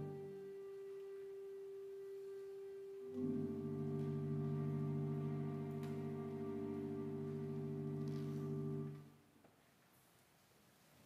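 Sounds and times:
held musical note: 0.0s - 9.1s
instrumental music: 0.0s - 9.2s.

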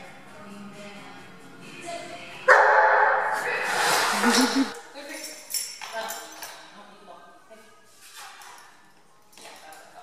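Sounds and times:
faint background music: 0.0s - 10.0s
dog barking loudly: 2.5s - 3.4s.

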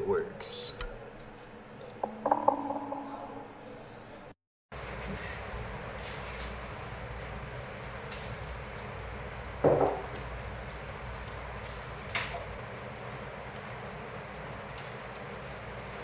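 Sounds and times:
dull knock: 2.2s - 3.0s.

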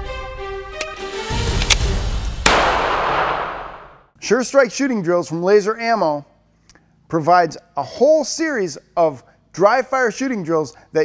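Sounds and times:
sharp crash ringing out: 1.8s - 4.1s.

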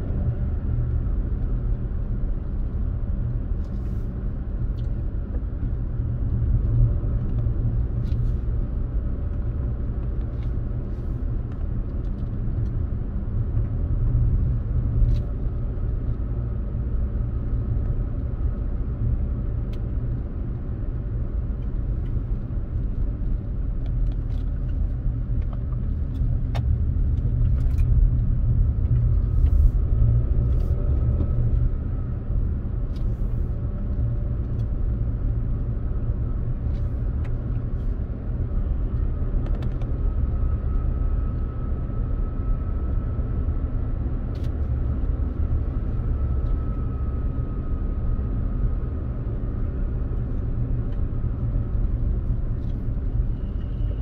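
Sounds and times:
road and engine rumble: 0.0s - 54.0s.

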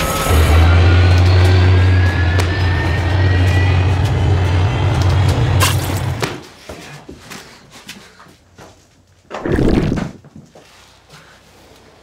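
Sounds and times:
deep steady drone: 0.0s - 6.2s.

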